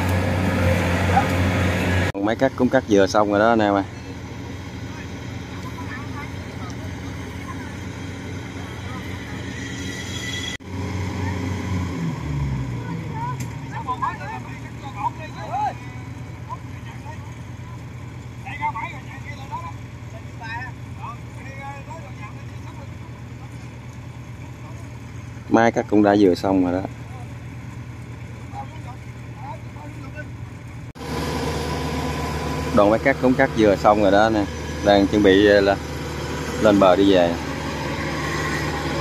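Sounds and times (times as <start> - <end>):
diesel combine engines running: 0.0 - 39.0
engine slowing down: 0.0 - 39.0.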